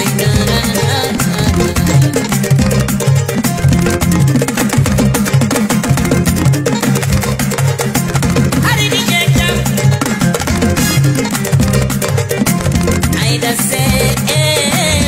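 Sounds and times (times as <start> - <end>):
dance band music: 0.0 - 15.0.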